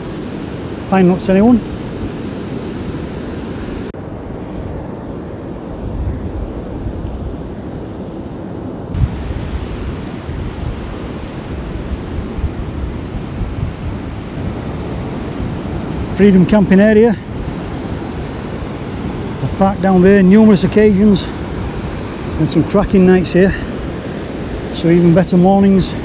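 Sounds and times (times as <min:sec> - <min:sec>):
surf breaking on beach: 0:00.0 - 0:26.0
wind buffeting microphone: 0:00.0 - 0:26.0.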